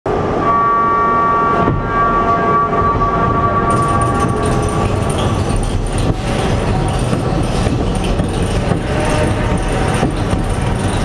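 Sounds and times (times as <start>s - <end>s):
roller coaster train rumbling: 0.1s - 11.0s
steady high tone: 0.2s - 6.0s.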